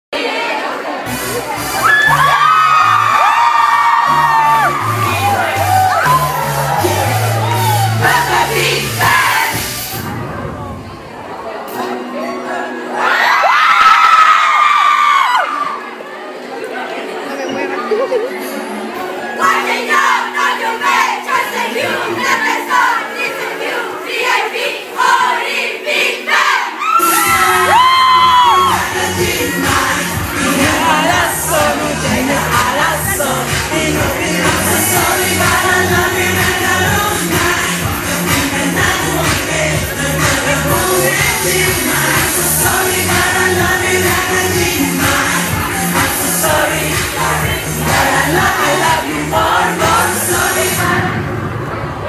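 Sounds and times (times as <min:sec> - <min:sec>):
crowd screaming and whooping: 0:00.2 - 0:10.8, 0:12.5 - 0:25.4, 0:26.2 - 0:52.0
loud pop music: 0:01.0 - 0:15.7, 0:19.0 - 0:52.0.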